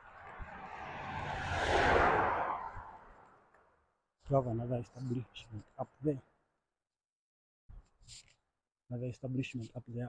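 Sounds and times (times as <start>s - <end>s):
vehicle passing by: 0.0s - 3.3s.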